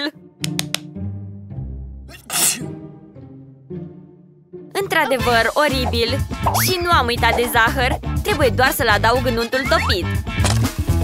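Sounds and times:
background music with bass: 5.1 - 11.0.

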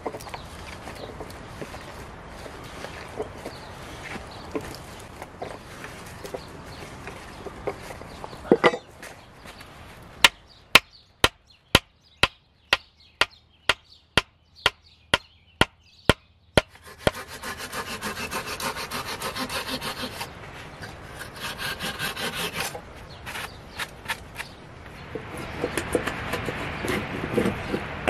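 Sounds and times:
knife scraping wood: 16.6 - 24.6.

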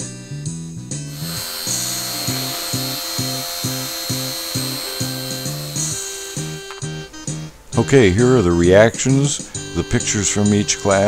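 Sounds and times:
guitar music with steady beat: 0.2 - 8.0
small electric motor whine: 1.1 - 7.4.

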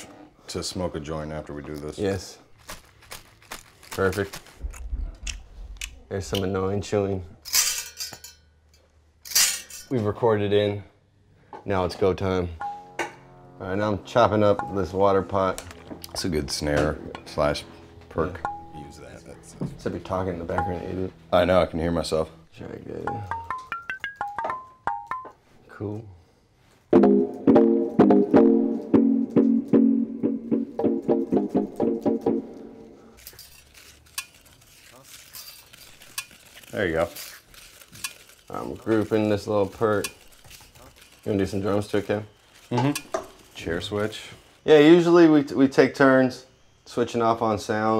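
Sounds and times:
rustling and handling noise: 1.5 - 6.6, 32.5 - 44.6.

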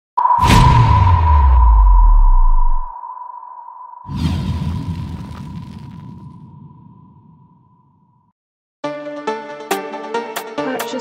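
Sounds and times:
whoosh hit: 0.2 - 3.1
high ringing tone: 0.2 - 4.1
deep bass rumble: 0.4 - 2.9.

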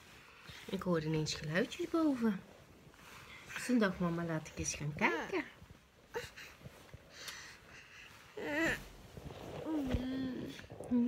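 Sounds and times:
woman humming: 9.6 - 11.0.

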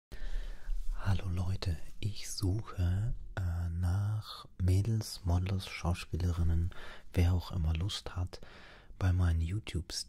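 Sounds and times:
man speaking close to microphone: 0.9 - 10.0.

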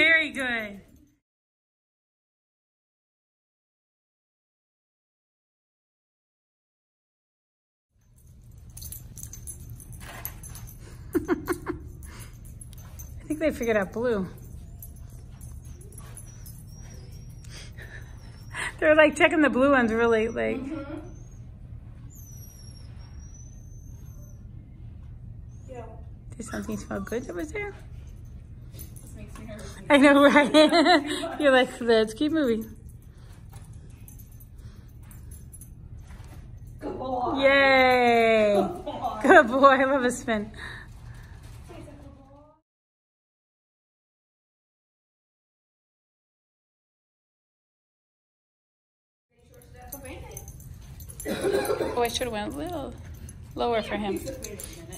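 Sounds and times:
dog collar tags jingling: 0.0 - 1.2, 8.0 - 18.9, 26.4 - 36.8, 49.4 - 54.9
low room hum: 8.0 - 42.6, 49.4 - 54.9
person laughing: 11.1 - 11.9, 51.2 - 52.1
dog paws clicking on carpet: 49.4 - 54.9.

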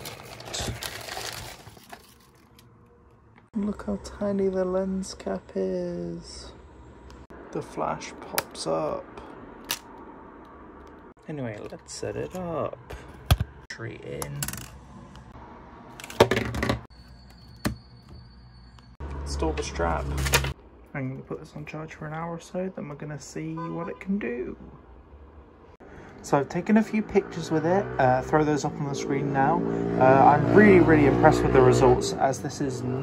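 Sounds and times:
plastic wrapping crinkling: 0.0 - 2.7.

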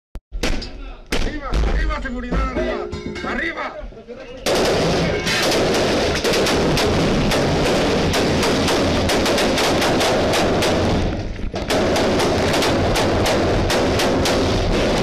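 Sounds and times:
automatic rifle fire: 4.4 - 15.0.

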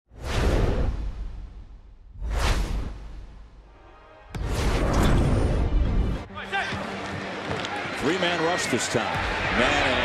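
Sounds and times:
whoosh with deep rumble: 0.1 - 3.7.

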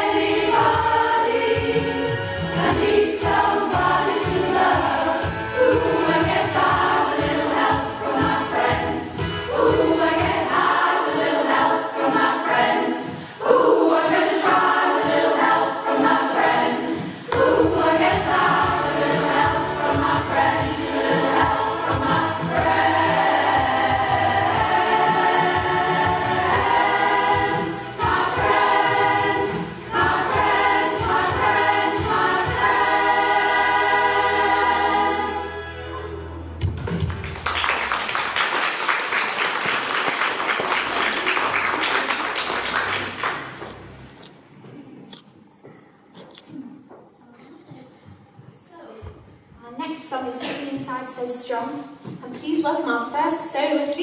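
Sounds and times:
choir singing: 0.0 - 36.4.

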